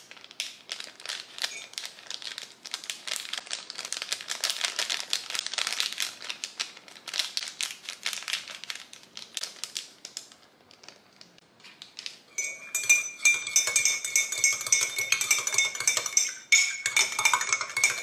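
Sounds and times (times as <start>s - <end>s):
paper sachet crinkling: 0.0s - 12.2s.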